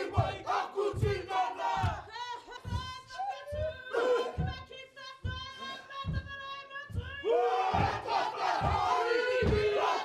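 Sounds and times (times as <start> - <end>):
group shouting a chant in unison: 0.0 - 2.0, 7.3 - 10.0
feet stamping: 0.0 - 10.0.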